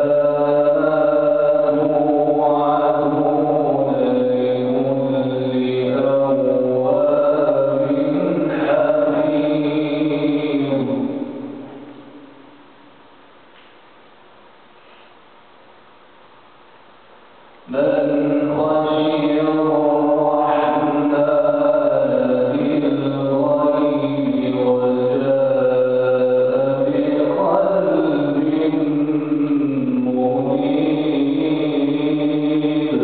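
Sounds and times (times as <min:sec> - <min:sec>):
man chanting melodically: 0:00.0 - 0:12.2, 0:17.7 - 0:33.0.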